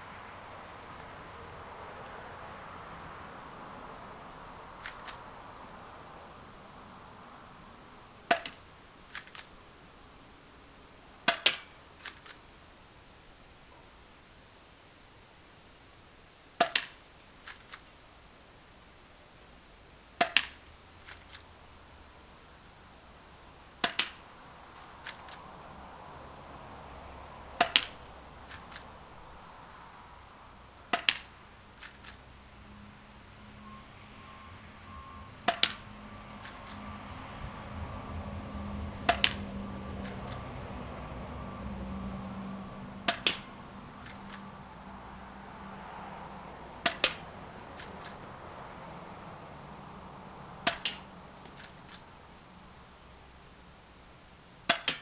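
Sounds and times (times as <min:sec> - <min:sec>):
low steady hum: 0:00.0 - 0:55.0
airsoft pistol shots: 0:16.6 - 0:17.0, 0:43.1 - 0:43.5, 0:54.7 - 0:55.0.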